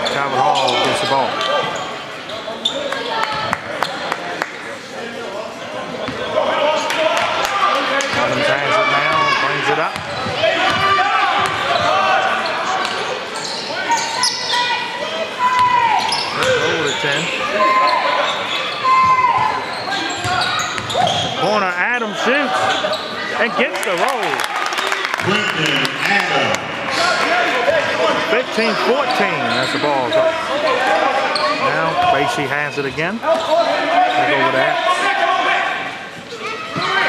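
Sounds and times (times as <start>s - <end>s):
voices of players and spectators: 0.0s - 37.0s.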